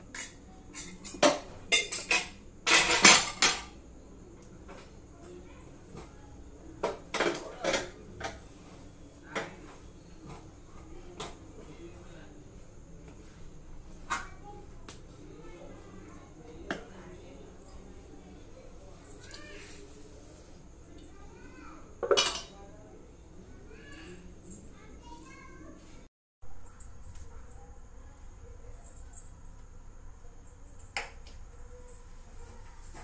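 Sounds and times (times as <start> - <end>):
metal dishes clattering: 0.1 - 3.8, 6.8 - 8.4, 22.0 - 22.6.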